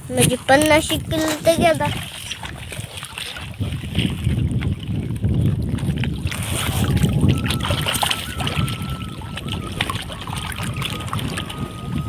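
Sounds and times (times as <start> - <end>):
water dripping and splashing: 0.0 - 12.0.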